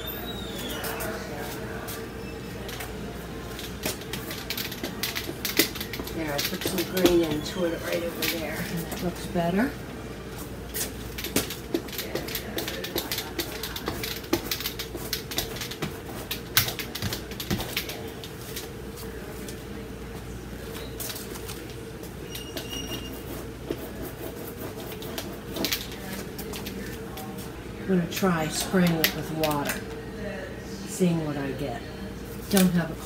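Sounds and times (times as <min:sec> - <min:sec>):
paintbrush scratching on canvas: 0:22.6 - 0:25.9.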